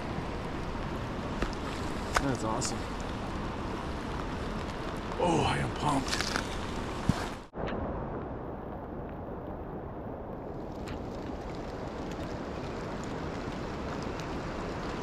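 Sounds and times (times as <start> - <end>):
river current rushing: 0.0 - 7.5.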